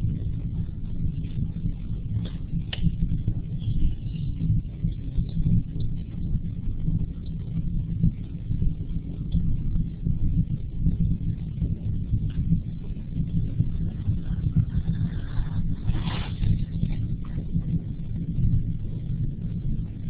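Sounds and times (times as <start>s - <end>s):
low uneven rumbling: 0.0s - 20.0s.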